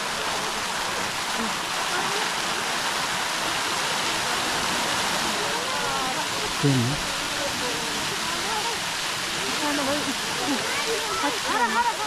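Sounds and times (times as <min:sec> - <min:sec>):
fountain water splashing: 0:00.0 - 0:12.0.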